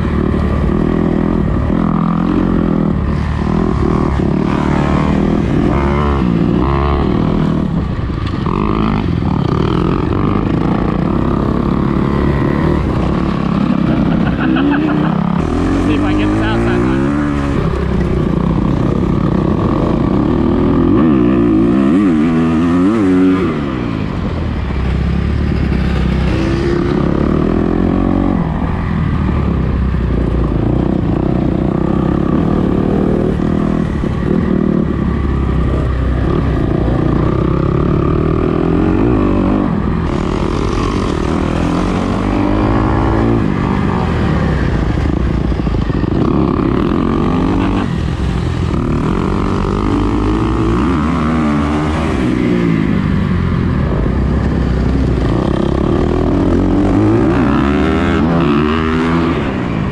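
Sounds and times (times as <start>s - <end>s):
dirt bike engine revving: 0.0s - 53.0s, 53.8s - 59.9s
other dirt bikes running: 0.0s - 59.9s.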